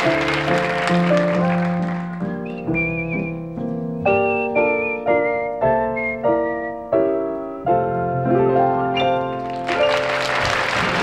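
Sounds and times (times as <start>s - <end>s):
applause: 0.0s - 2.6s, 9.3s - 11.0s
grand piano chords: 0.0s - 11.0s
whistled melody: 0.6s - 7.7s, 8.3s - 10.4s.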